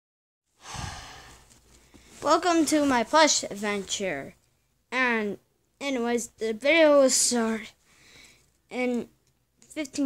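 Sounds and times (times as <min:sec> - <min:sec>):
person exhaling: 0:00.6 - 0:01.5.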